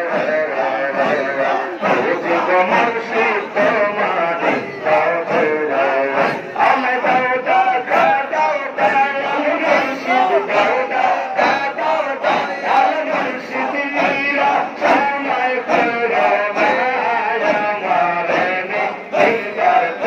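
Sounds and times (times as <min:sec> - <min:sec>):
men chanting together: 0:00.0 - 0:20.0.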